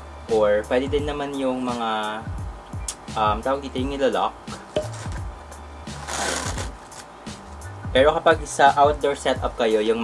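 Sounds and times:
music with low beat: 0:00.0 - 0:10.0
plastic bag box rustling: 0:04.8 - 0:05.2.

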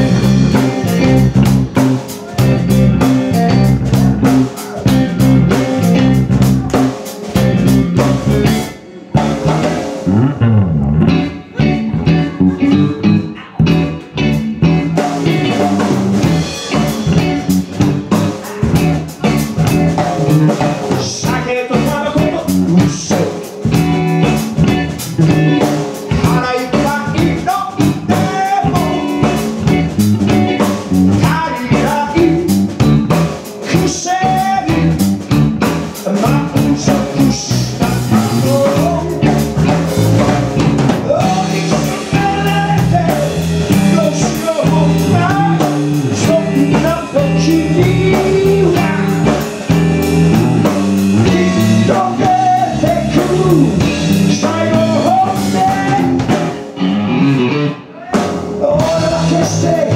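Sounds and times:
drum kit: 0:00.0 - 0:59.9
electric bass: 0:00.0 - 0:59.9
electric guitar: 0:00.0 - 0:59.9
person singing lead: 0:25.5 - 0:29.9, 0:31.2 - 0:32.7, 0:36.0 - 0:49.7, 0:51.2 - 0:56.4, 0:57.4 - 0:59.9.

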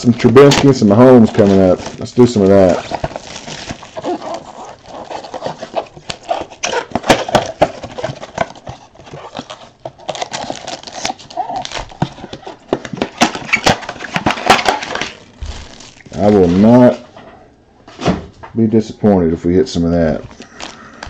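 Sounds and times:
foil wrappers crinkling: 0:00.0 - 0:17.0, 0:20.2 - 0:21.0.

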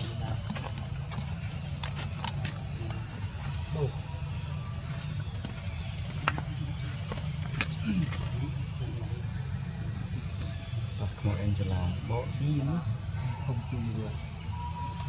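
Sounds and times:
high-pitched insect chorus: 0:00.0 - 0:15.0.

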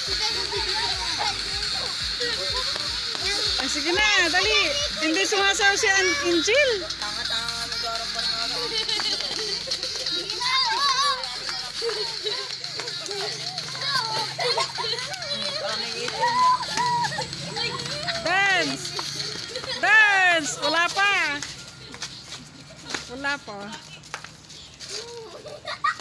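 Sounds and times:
children chattering and shouting: 0:00.0 - 0:26.0.

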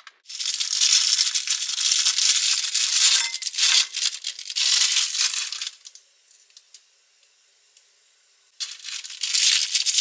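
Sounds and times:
plastic wrapper crinkling: 0:00.0 - 0:06.6, 0:08.6 - 0:10.0.

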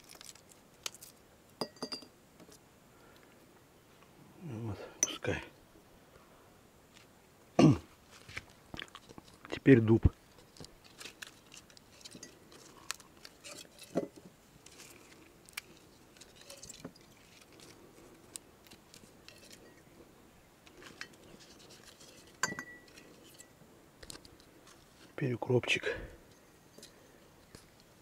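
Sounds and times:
leaves being torn: 0:00.0 - 0:01.2, 0:10.4 - 0:13.9, 0:14.6 - 0:19.6
glass jars clinking: 0:01.6 - 0:02.1, 0:22.4 - 0:23.0.

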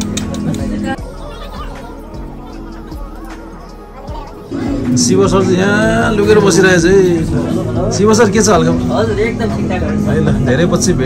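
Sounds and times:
faint voices: 0:00.0 - 0:11.0
soft background music: 0:00.0 - 0:11.0.

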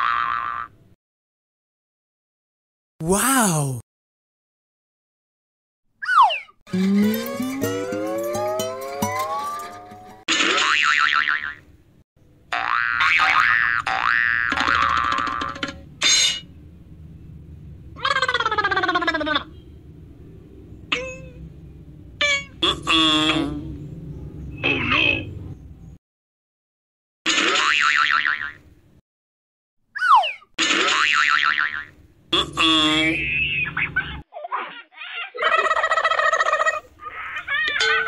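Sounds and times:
warbling effect: 0:06.7 - 0:10.1
upward pitch sweep effects: 0:06.7 - 0:10.2
cartoon boing: 0:12.5 - 0:16.4.

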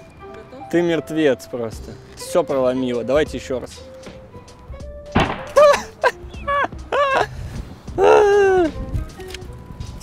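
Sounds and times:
background music: 0:00.0 - 0:10.0
helmet thunk against stone: 0:05.2 - 0:05.7.

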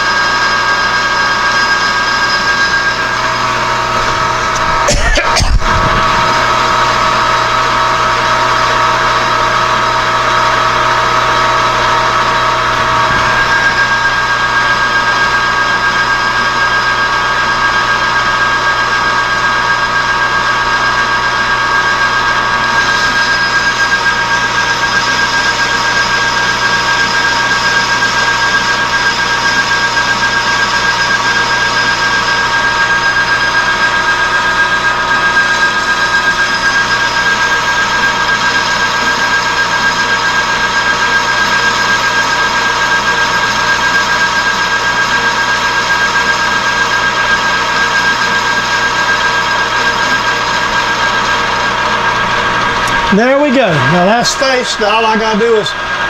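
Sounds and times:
metal lathe whining: 0:00.0 - 0:56.0.

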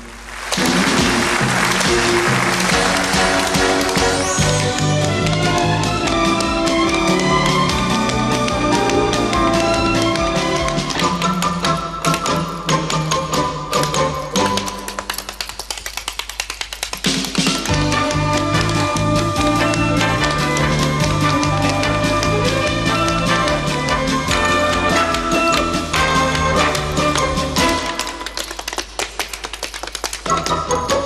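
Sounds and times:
thin musical accompaniment: 0:00.6 - 0:31.0.

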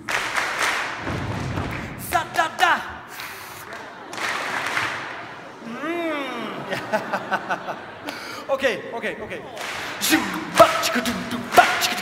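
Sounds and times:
audience applause: 0:00.0 - 0:08.4, 0:09.5 - 0:12.0.

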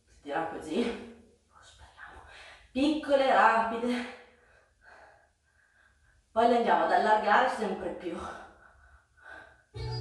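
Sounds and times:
woman speaking: 0:00.2 - 0:04.2, 0:06.4 - 0:08.5
woman breathing: 0:02.1 - 0:02.8, 0:04.0 - 0:06.3, 0:08.2 - 0:09.8.

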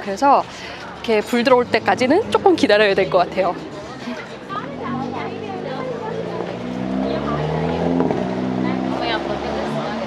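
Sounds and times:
faint voices of passers-by: 0:00.0 - 0:10.0
car engine passing by: 0:01.4 - 0:10.0.

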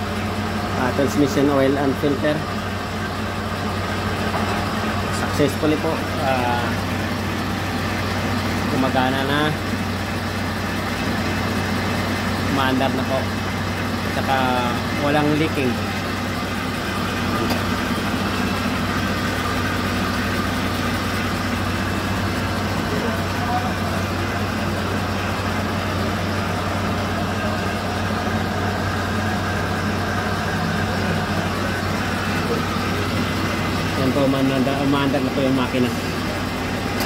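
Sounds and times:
truck engine idling: 0:00.0 - 0:37.0.

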